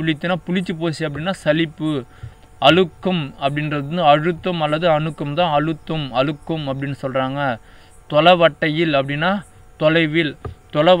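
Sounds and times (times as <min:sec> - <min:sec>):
low mains hum: 0:00.0 - 0:11.0
man speaking: 0:00.0 - 0:11.0.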